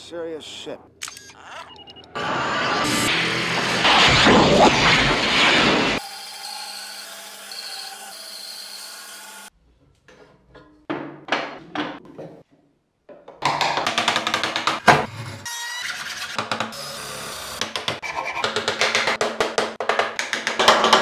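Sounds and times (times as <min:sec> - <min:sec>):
loud rushing noise: 0:02.7 - 0:06.0.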